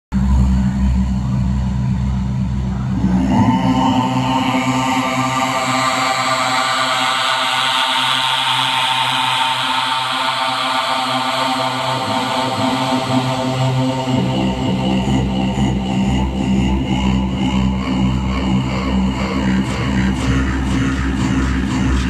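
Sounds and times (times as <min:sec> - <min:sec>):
high held tone with overtones: 0:00.1 - 0:07.6
low hum drone: 0:00.1 - 0:22.0.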